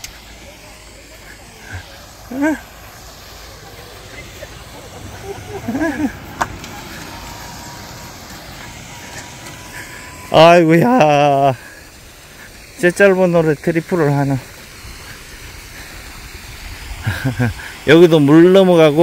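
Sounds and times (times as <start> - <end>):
faint voices: 0.0 - 16.4
low outdoor rumble: 0.0 - 16.8.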